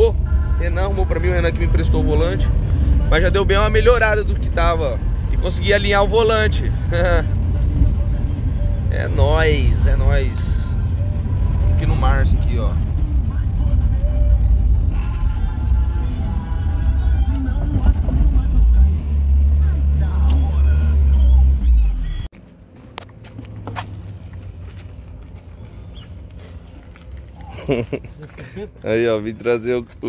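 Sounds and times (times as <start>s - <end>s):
music playing in car: 0.0s - 22.3s
car engine and road rumble: 0.0s - 30.0s.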